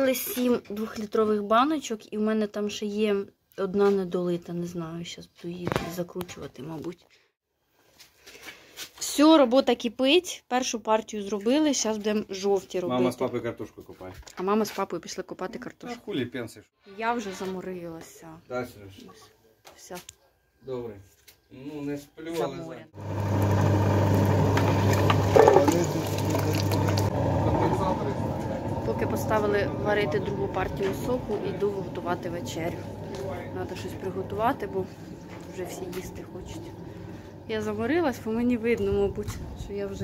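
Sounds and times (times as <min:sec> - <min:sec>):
juicer electric motor humming: 0:23.0 - 0:38.8.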